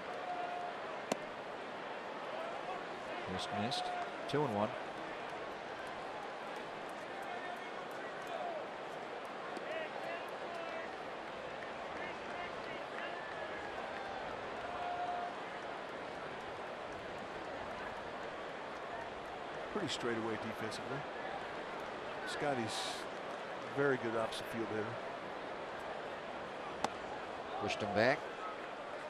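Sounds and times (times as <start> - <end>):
stadium crowd chatter: 0.0 - 29.0.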